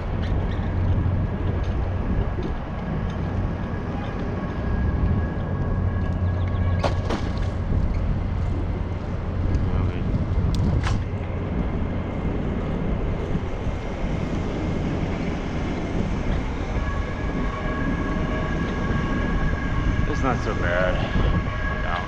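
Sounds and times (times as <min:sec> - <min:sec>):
road rumble: 0:00.0 - 0:22.0
steady high whine: 0:00.0 - 0:22.0
wind rushing over microphone: 0:00.0 - 0:22.0.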